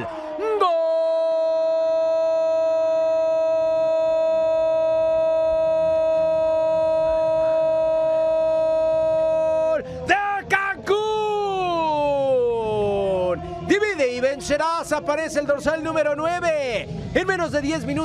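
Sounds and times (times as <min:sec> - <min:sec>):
commentator shouting goal: 0:08.5 - 0:18.0.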